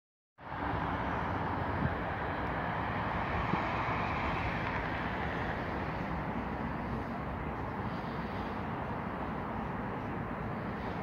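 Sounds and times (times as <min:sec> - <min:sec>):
highway traffic noise: 0:00.4 - 0:11.0.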